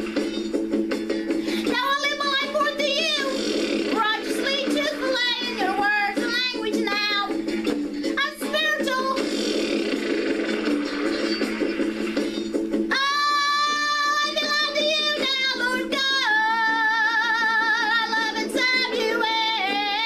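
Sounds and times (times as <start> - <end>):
woman singing: 1.6 - 3.4, 4.0 - 7.3, 8.2 - 9.2, 12.9 - 20.0.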